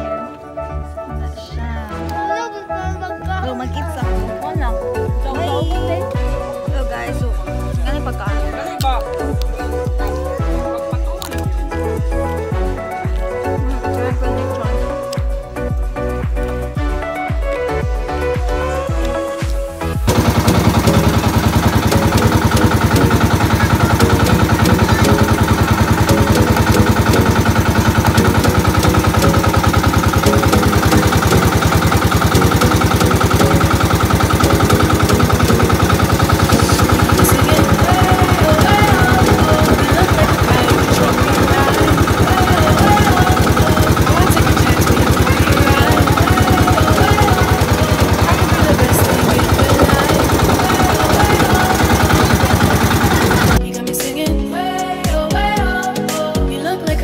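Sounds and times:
boat engine drone: 20.0s - 53.6s.

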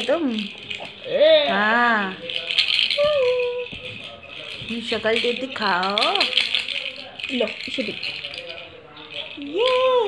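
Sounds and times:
plastic baby rattles shaking: 0.0s - 10.0s.

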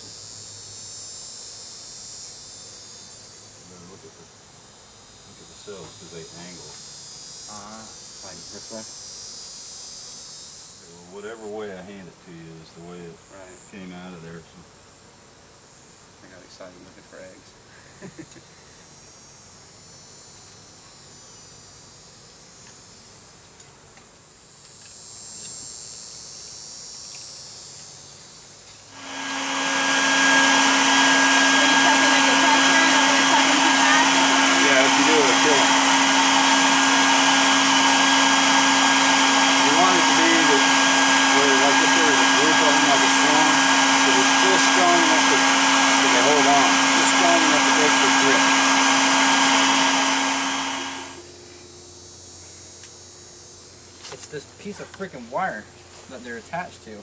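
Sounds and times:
vacuum motor humming: 5.3s - 6.8s, 7.5s - 8.8s, 27.7s - 57.0s.

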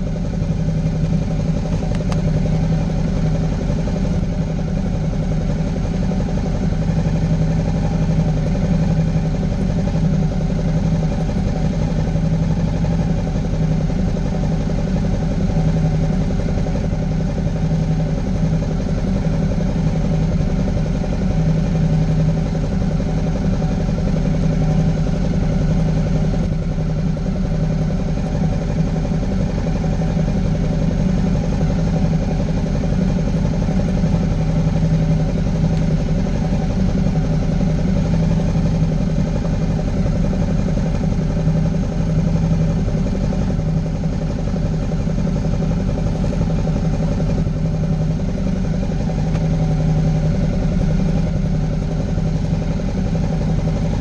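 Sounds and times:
motorcycle engine idling: 0.0s - 54.0s.

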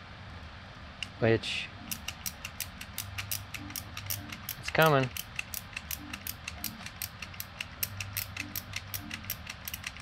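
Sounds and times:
plastic ratchet clicking: 1.9s - 10.0s.

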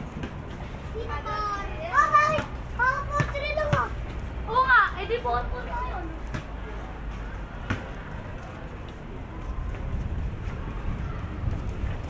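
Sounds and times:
steady low rumble: 5.4s - 12.0s.

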